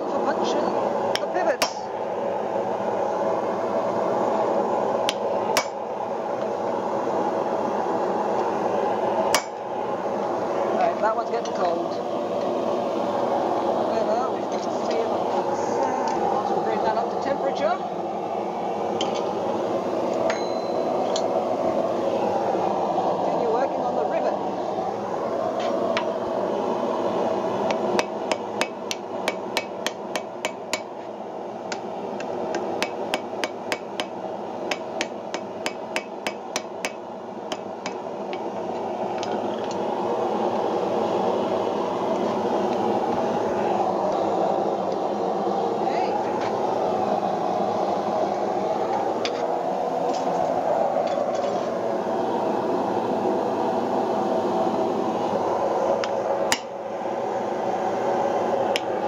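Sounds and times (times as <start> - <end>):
steady rushing noise: 0.0 - 59.0
hammer striking iron on anvil: 5.6 - 5.8, 9.3 - 9.6, 20.3 - 20.8, 28.0 - 30.9, 32.8 - 34.1, 34.7 - 38.0.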